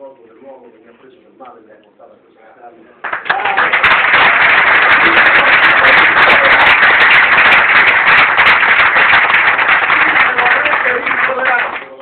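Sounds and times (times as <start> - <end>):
audience applauding: 3.0 - 12.0.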